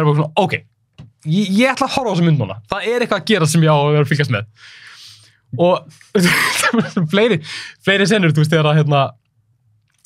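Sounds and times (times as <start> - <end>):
man talking: 0.0 - 9.2.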